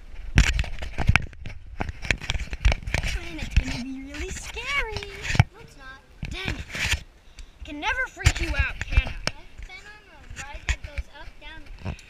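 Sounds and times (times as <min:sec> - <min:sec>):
unclear talking voices: 0:03.0 - 0:06.8.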